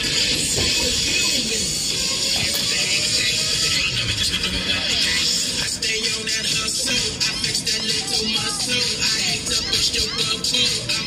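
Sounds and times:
loud dance music: 0:00.0 - 0:11.0.

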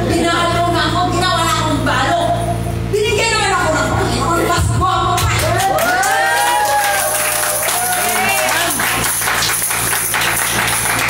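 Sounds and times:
low steady hum: 0:00.0 - 0:11.0
rhythmic percussive strikes: 0:07.1 - 0:11.0.

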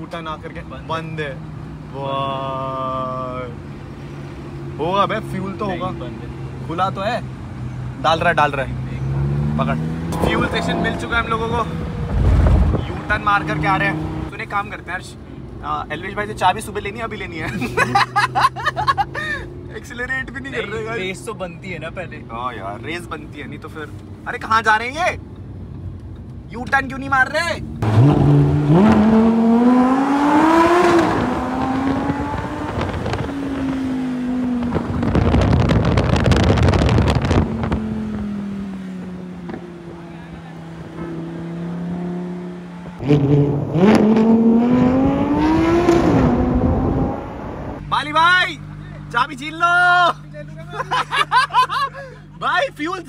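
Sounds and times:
car engine drone: 0:00.0 - 0:53.0
people laughing: 0:17.4 - 0:19.5, 0:50.6 - 0:52.3.

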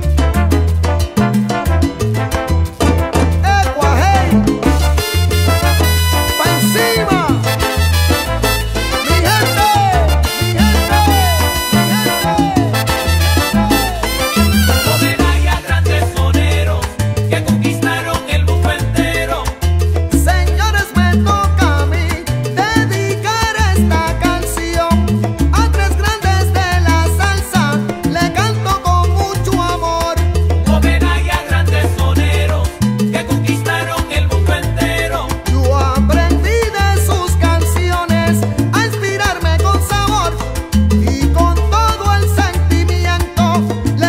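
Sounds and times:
bass line: 0:00.0 - 0:44.0
salsa music: 0:00.0 - 0:44.0.

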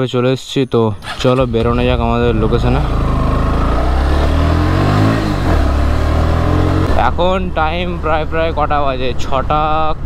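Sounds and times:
motorcycle engine running: 0:01.1 - 0:09.0.

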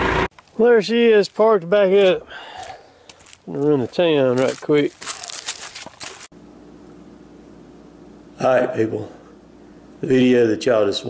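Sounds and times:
footsteps through dry leaves: 0:02.6 - 0:06.3
faint steady hum: 0:05.8 - 0:11.0.

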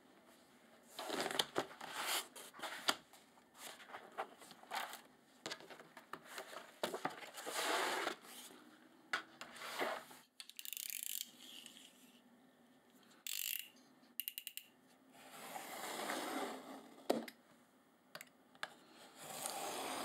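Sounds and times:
paper rustling: 0:01.0 - 0:08.5.

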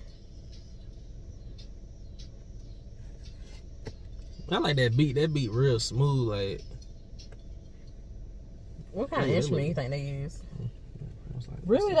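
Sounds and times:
faint ticks: 0:00.0 - 0:04.4
car cabin hum: 0:00.0 - 0:12.0.

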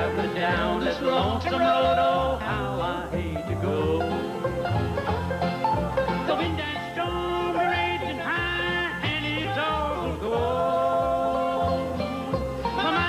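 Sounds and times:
acoustic guitars picking: 0:00.0 - 0:13.0
bass beat: 0:00.0 - 0:13.0
mandolin picking: 0:00.0 - 0:13.0.

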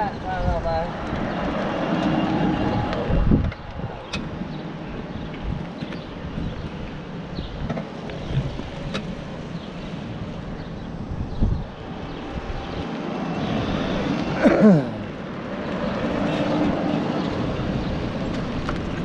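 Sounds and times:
wind buffeting microphone: 0:00.0 - 0:14.4, 0:15.0 - 0:19.0
golf cart tyres rumbling: 0:00.0 - 0:19.0.

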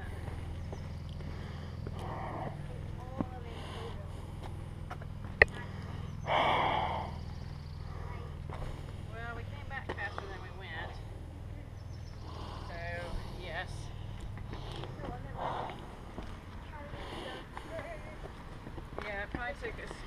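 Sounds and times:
footsteps on rocky trail: 0:00.0 - 0:06.1, 0:08.4 - 0:11.0, 0:11.8 - 0:20.0
steady low rumble: 0:00.0 - 0:20.0.

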